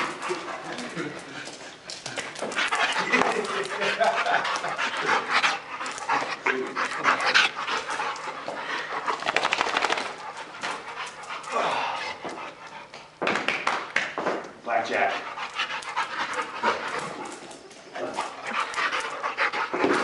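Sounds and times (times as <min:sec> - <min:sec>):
dog panting: 0:00.0 - 0:13.2, 0:14.9 - 0:20.0.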